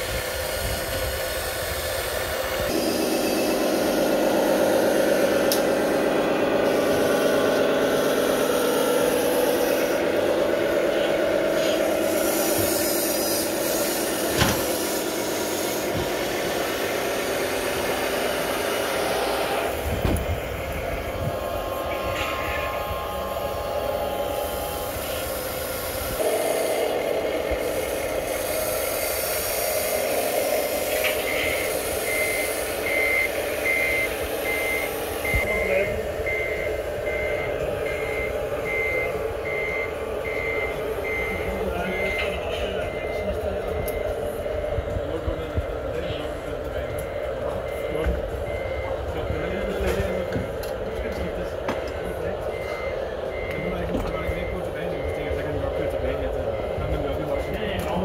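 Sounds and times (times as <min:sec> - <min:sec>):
electric motors whirring: 0:00.0 - 0:58.0
reversing beeper: 0:02.3 - 0:58.0.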